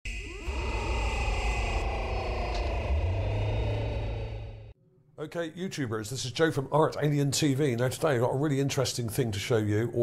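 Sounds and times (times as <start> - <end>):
steady high whine: 0.0 - 4.8
heavy low rumble: 0.1 - 4.8
whirring tones sliding downward: 0.1 - 4.8.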